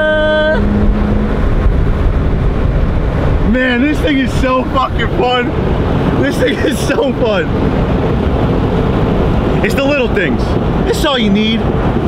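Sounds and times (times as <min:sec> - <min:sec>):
car engine running: 0:00.0 - 0:12.0
road and wind noise: 0:00.0 - 0:12.0.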